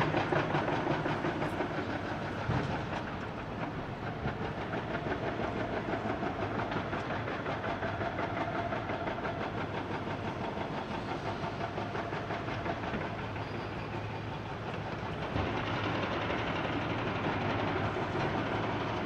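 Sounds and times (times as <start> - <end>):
diesel excavator engines running: 0.0 - 19.0.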